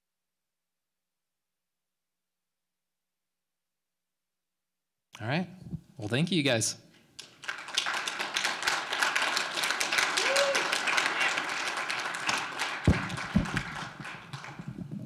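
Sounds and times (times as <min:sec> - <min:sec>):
audience applauding: 0:07.2 - 0:14.9.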